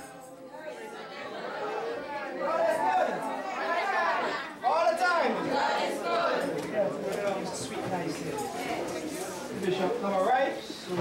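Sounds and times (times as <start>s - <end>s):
indistinct voices in a hall: 0.0s - 11.0s.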